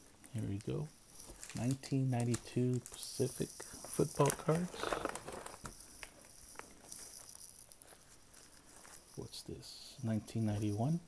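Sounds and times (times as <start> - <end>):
rustling of cardboard and plastic: 0.0 - 11.0.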